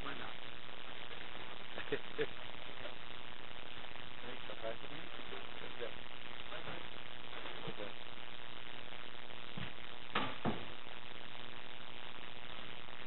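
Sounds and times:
electrical hiss and buzz: 0.0 - 13.0.

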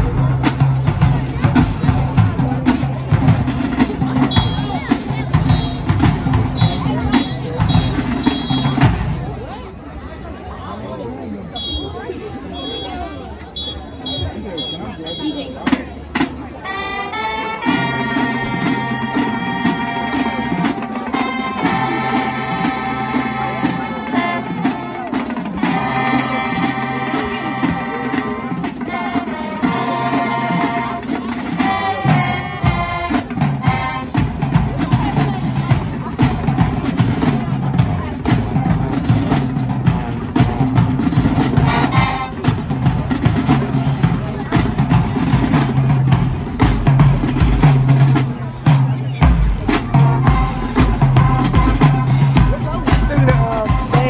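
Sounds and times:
pounding bass drum beat: 0.0 - 9.2, 31.6 - 54.0
marching band brass chords: 0.0 - 9.7, 11.5 - 54.0.

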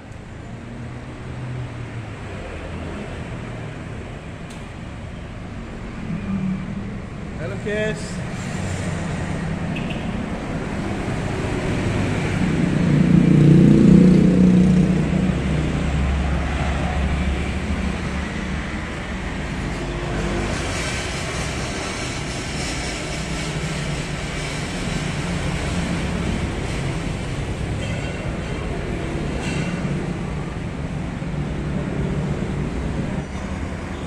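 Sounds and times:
low rumble of road traffic: 0.0 - 34.0.

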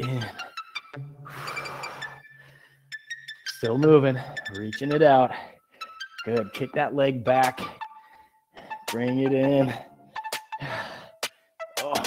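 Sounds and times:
faint background music with bass: 0.0 - 2.3, 3.0 - 5.4, 6.0 - 8.0, 8.6 - 12.0.

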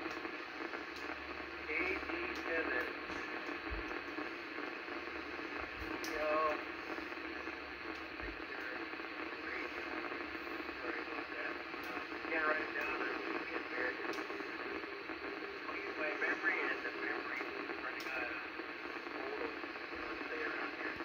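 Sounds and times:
radio receiver hiss: 0.0 - 21.0
faint unintelligible radio speech: 0.2 - 21.0.

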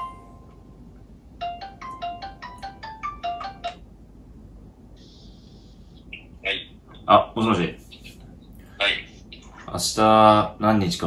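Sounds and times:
smartphone ringtone melody: 0.0 - 0.4, 1.4 - 3.8.

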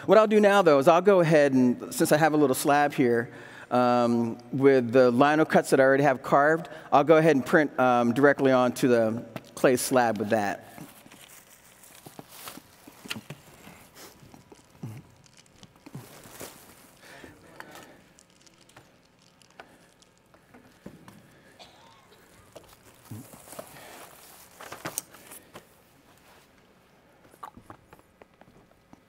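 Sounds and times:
footsteps: 9.9 - 19.1
plastic sheet rustling: 10.0 - 20.3, 22.1 - 26.5.

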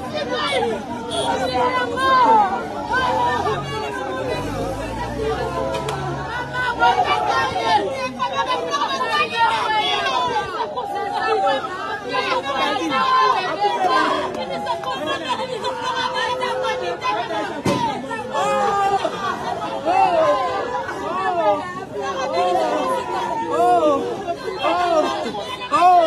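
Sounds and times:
women wailing and crying: 0.2 - 26.0.

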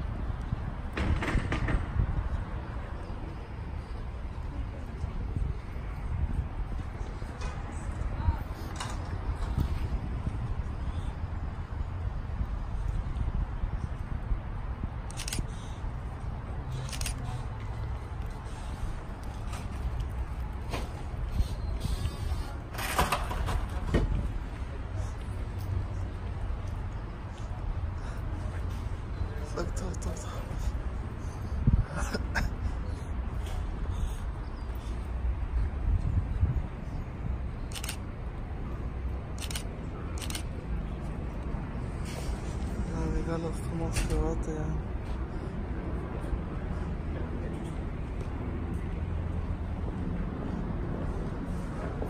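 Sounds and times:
wind rumbling on microphone: 0.0 - 27.0, 30.4 - 37.9.

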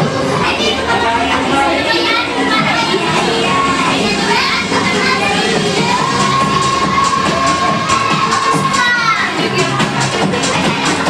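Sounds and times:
children shouting and cheering: 0.0 - 11.0
dance music: 0.0 - 11.0.

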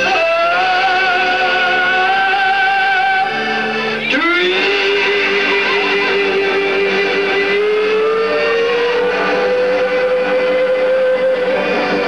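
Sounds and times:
country band playing: 0.0 - 12.0.

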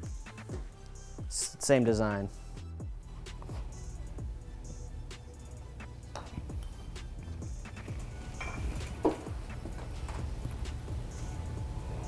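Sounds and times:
quiet background music: 0.0 - 12.0.

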